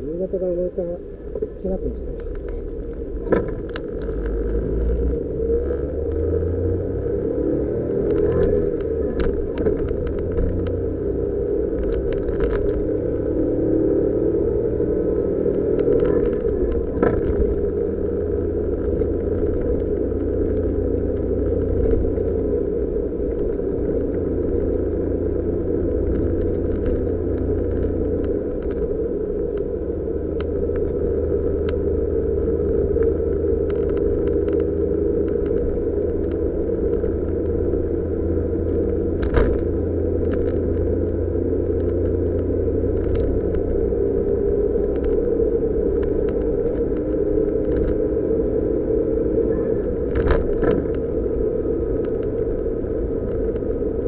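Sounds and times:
car engine and tyre drone: 0.0 - 54.0.

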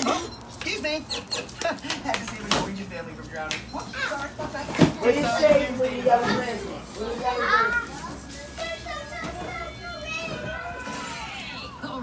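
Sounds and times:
young children talking and playing: 3.7 - 12.0.

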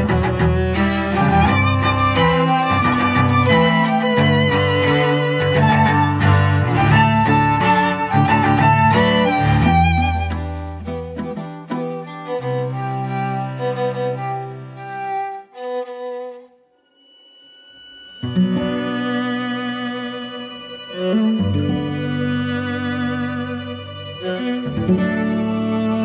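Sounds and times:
string quartet music: 0.0 - 16.6, 18.2 - 26.0.

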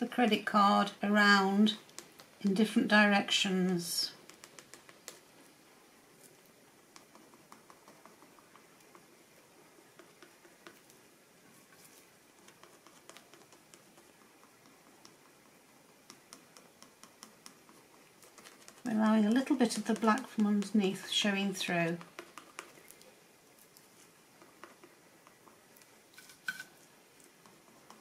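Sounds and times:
plastic card scraping paint on paper: 4.1 - 5.3, 11.6 - 15.0, 16.1 - 23.1.

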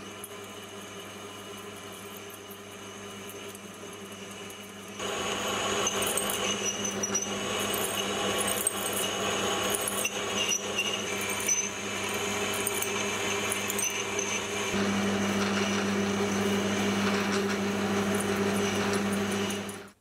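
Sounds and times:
high whine of metal cutting: 0.0 - 20.0
lathe motor hum: 0.0 - 20.0.

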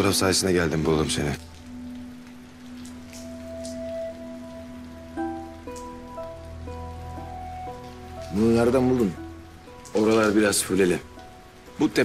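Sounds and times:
soft dramatic background music: 0.0 - 12.0.

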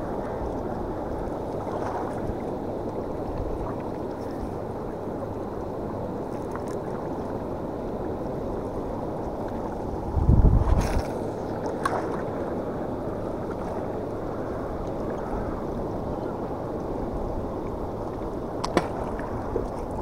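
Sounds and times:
wind: 0.0 - 20.0
low rumble on microphone: 8.7 - 20.0.

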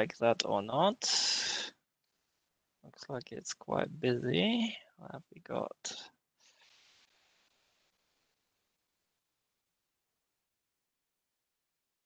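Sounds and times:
man's voice: 3.0 - 6.1.

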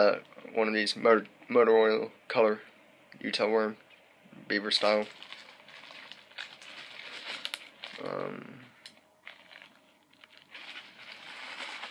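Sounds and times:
plastic packaging crinkling: 4.7 - 11.9.

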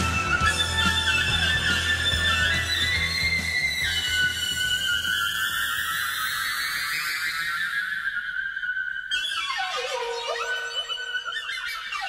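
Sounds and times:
bass guitar: 0.0 - 4.6
drums: 0.0 - 7.9.

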